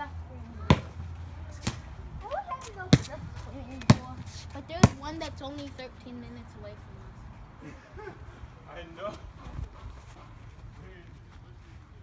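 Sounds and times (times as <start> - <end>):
ball bouncing on concrete: 0.6 - 5.7.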